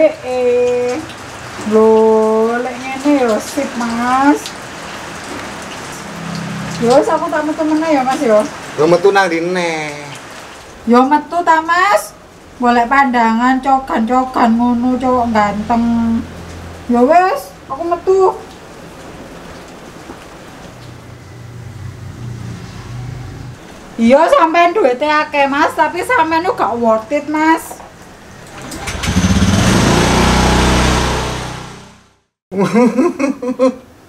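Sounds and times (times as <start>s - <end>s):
rain hissing: 0.0s - 26.7s, 27.3s - 32.1s
engine humming: 25.1s - 32.2s.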